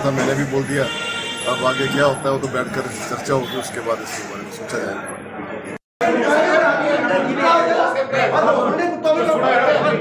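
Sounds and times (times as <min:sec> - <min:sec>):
men talking loudly over each other: 0:06.0 - 0:10.0.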